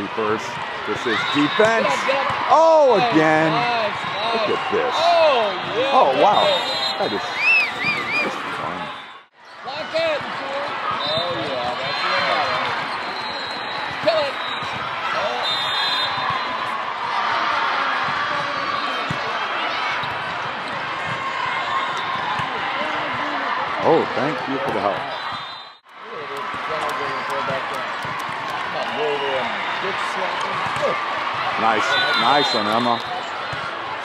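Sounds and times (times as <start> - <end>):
crowd calling and cheering: 0.0 - 34.0.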